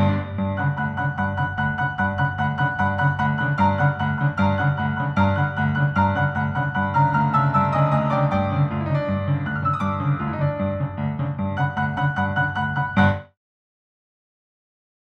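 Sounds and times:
solo piano music: 0.0s - 13.4s.

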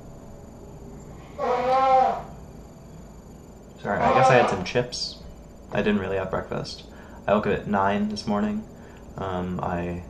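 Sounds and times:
man's wordless thinking noise: 3.8s - 8.6s.

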